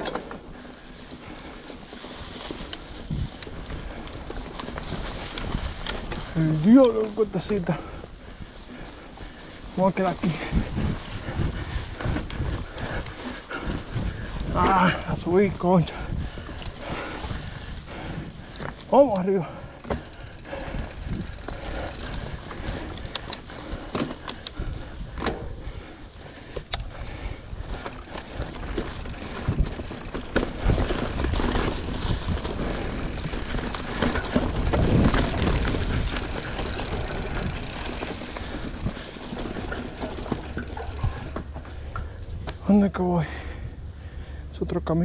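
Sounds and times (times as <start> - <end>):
bike clicks and knocks: 0.0 - 8.0, 10.3 - 42.7
bike tyres crunching through leaves: 0.0 - 44.5.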